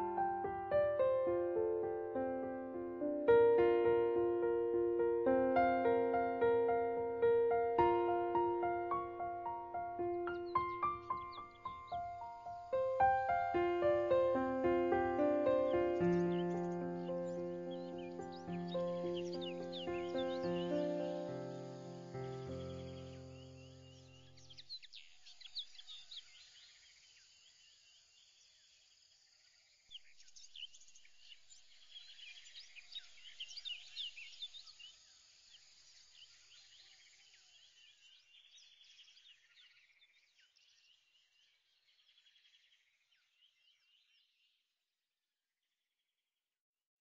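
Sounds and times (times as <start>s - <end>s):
birds chirping and trilling: 4.6s - 27.6s, 29.8s - 44.6s.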